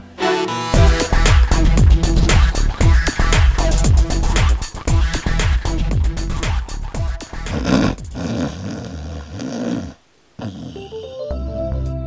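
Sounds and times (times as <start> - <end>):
dog making rumbling vocal noises: 1.6 - 2.9, 6.3 - 10.9.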